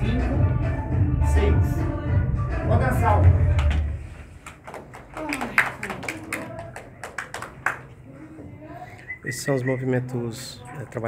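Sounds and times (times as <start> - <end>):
hand claps: 3.2 - 8.0.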